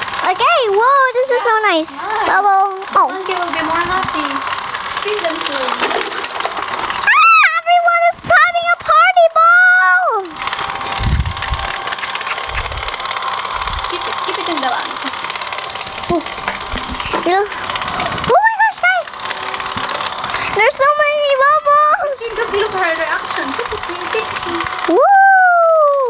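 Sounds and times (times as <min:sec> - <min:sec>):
bubble machine fan motor: 0:00.0 - 0:26.0
child's high-pitched voice: 0:00.2 - 0:06.0, 0:07.1 - 0:10.4, 0:17.1 - 0:19.2, 0:20.5 - 0:26.0.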